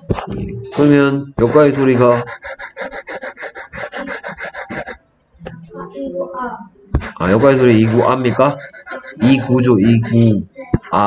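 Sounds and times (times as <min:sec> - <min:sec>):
stylus scribbling on tablet: 0:01.4 - 0:05.0, 0:06.9 - 0:10.5.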